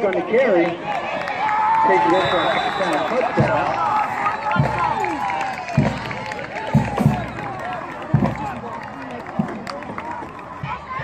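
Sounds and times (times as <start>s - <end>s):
crowd cheering and shouting: 0.1s - 11.0s.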